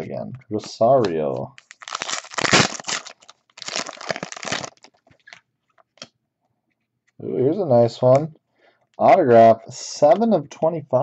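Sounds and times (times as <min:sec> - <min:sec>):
foil wrapper crinkling: 0:01.5 - 0:05.4.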